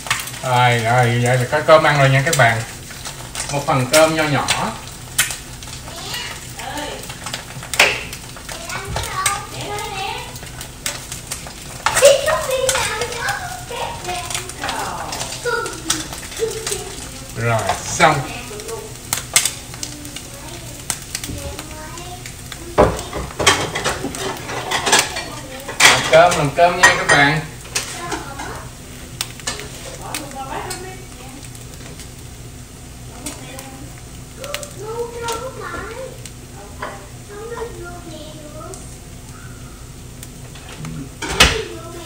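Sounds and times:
eggs sizzling in a frying pan: 0:00.0 - 0:42.0.

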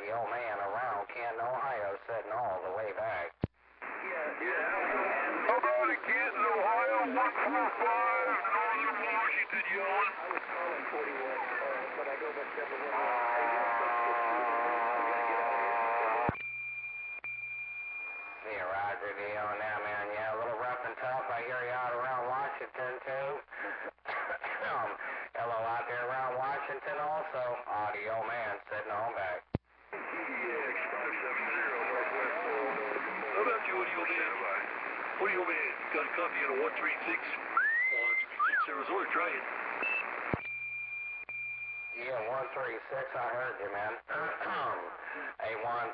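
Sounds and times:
clearer radio voice: 0:00.0 - 0:15.6, 0:18.4 - 0:29.4, 0:30.0 - 0:40.4, 0:42.0 - 0:45.9
garbled radio voices: 0:00.0 - 0:16.4, 0:18.4 - 0:40.5, 0:41.9 - 0:45.9
radio click: 0:04.7 - 0:12.9, 0:29.5 - 0:40.6.

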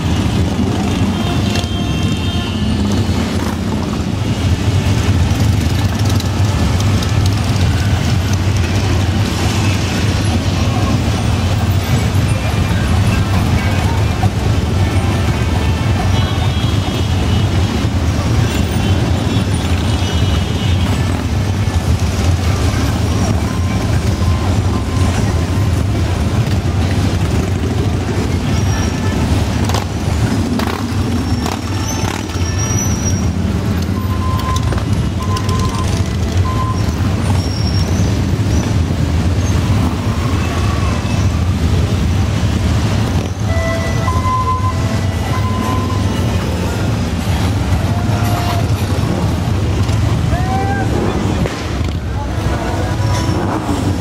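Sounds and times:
motorcycles rumbling: 0:00.0 - 0:54.0
short horn beeps: 0:43.4 - 0:46.3.

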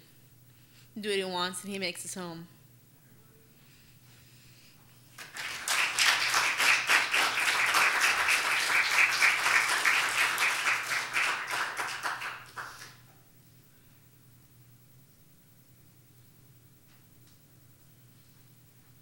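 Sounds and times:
people applauding: 0:05.1 - 0:13.1.

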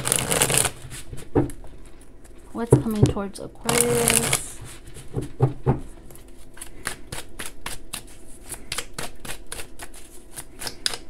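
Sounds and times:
cards being shuffled: 0:00.0 - 0:01.3, 0:03.6 - 0:04.9.

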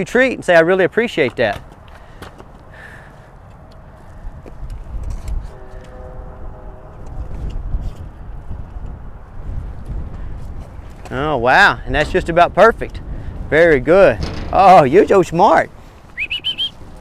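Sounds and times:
wind buffeting microphone: 0:01.6 - 0:17.0.

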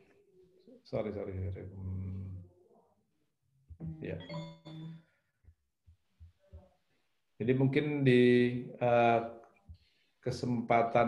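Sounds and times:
man speaking over video call: 0:00.7 - 0:02.4, 0:04.0 - 0:04.4, 0:07.4 - 0:09.5, 0:10.2 - 0:11.0.

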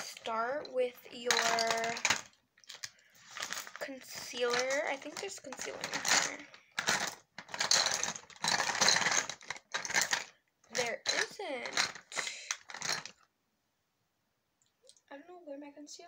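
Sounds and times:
makeup items clattering: 0:00.0 - 0:13.3.

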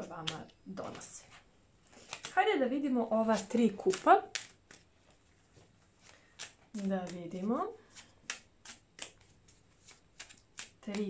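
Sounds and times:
cards sliding and snapping: 0:01.9 - 0:02.4, 0:03.3 - 0:04.9, 0:06.0 - 0:07.3, 0:07.9 - 0:11.0.

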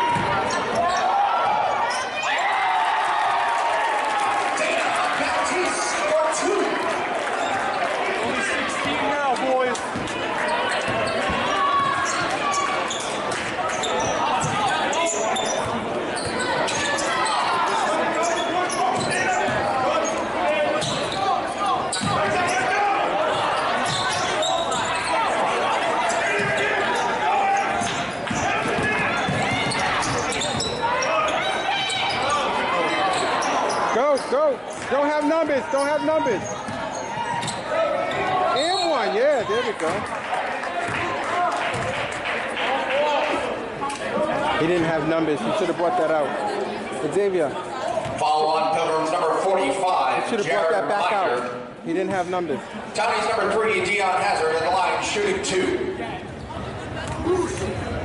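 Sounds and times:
sneakers squeaking on floor: 0:00.0 - 0:02.4, 0:08.8 - 0:40.0
spectators chattering: 0:00.0 - 0:58.0.

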